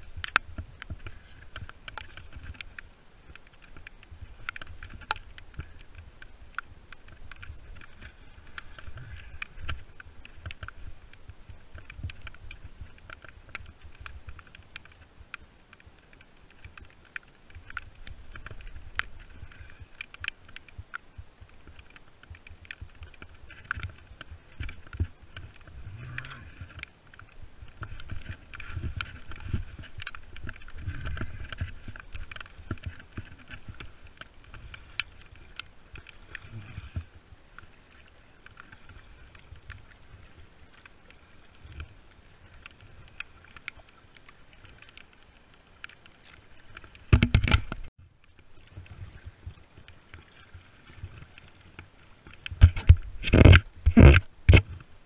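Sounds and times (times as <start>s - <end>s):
water sloshing from paddle strokes: 0.0s - 55.0s.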